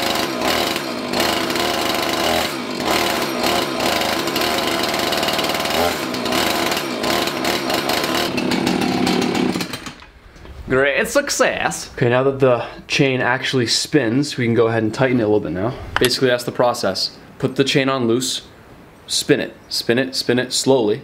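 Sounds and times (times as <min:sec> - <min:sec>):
chainsaw engine revving: 0:00.0 - 0:10.2.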